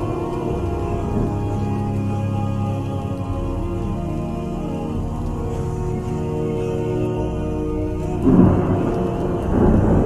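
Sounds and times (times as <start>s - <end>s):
thunder rumbling: 0.0s - 1.8s, 8.2s - 10.0s
slowed vocal chant: 0.0s - 10.0s.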